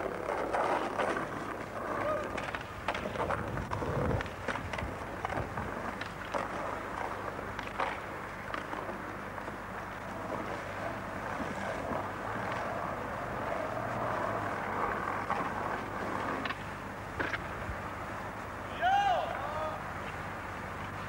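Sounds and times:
skateboard clacks: 0:00.0 - 0:18.0
skateboard wheels rolling on paving: 0:00.0 - 0:21.0.

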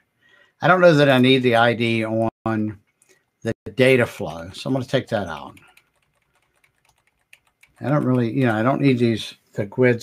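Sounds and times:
keyboard keys clicking: 0:05.1 - 0:08.7.

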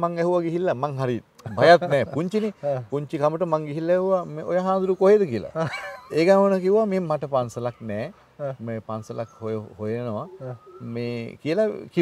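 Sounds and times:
man talking animatedly: 0:00.0 - 0:12.0.

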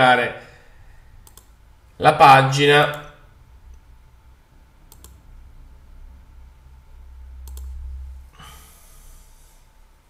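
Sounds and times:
low hum: 0:00.1 - 0:10.0
computer mouse clicks: 0:01.2 - 0:01.5, 0:04.9 - 0:05.2, 0:07.4 - 0:07.8.

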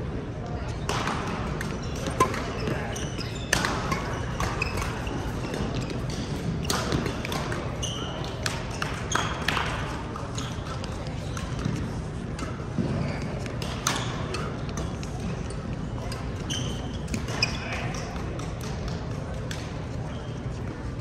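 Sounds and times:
echoing hubbub of voices: 0:00.0 - 0:21.0
shoe squeaks on court floor: 0:01.8 - 0:07.2, 0:07.8 - 0:09.4, 0:12.8 - 0:17.9.

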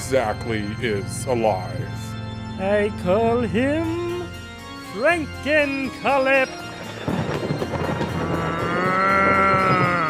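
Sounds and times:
crackling thunder-like crash effect: 0:06.8 - 0:10.0.

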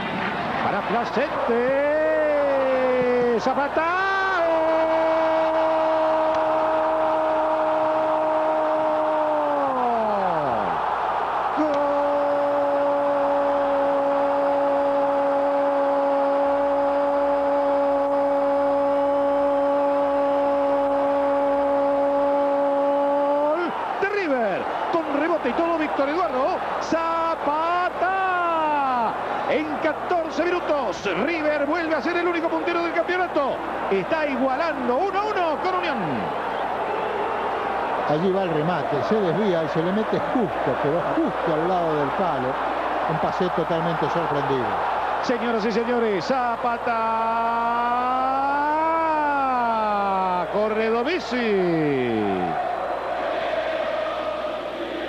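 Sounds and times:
crowd noise: 0:00.0 - 0:55.0
excited shouting: 0:01.4 - 0:55.0
commentator's drawn-out goal cry: 0:11.5 - 0:36.3.

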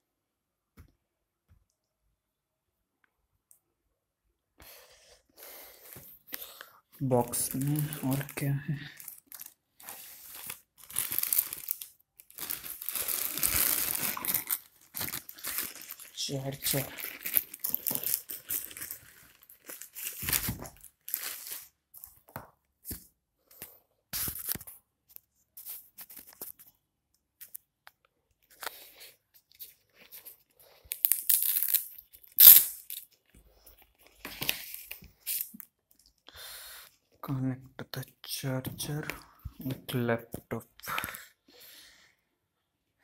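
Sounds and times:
plastic wrapping crinkling and tearing: 0:07.0 - 0:22.2, 0:28.5 - 0:36.2.

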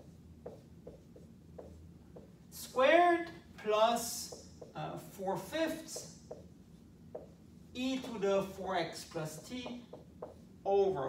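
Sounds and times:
marker writing on whiteboard: 0:00.0 - 0:02.8, 0:03.9 - 0:11.0.

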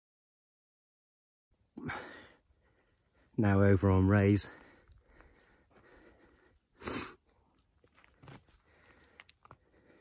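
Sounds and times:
person sniffing: 0:06.8 - 0:07.2.

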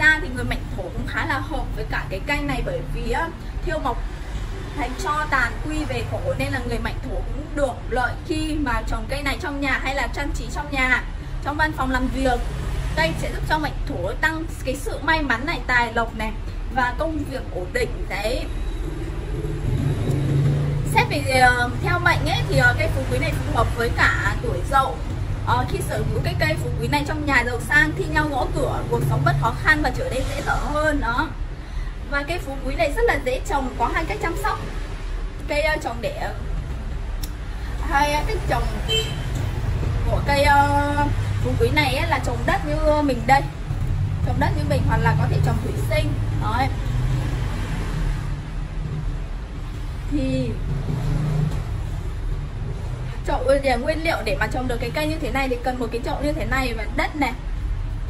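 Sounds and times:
vehicle engine rumble passing: 0:18.4 - 0:53.9.

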